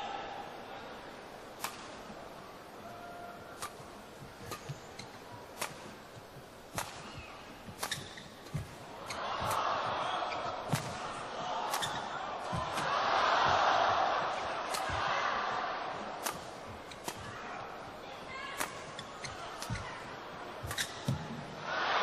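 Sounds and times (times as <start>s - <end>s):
crowd noise: 0.0s - 22.0s
racket striking shuttlecock: 4.4s - 6.0s, 6.7s - 9.6s, 10.6s - 12.9s, 14.2s - 15.0s, 15.9s - 17.8s, 18.6s - 19.9s, 20.6s - 21.3s.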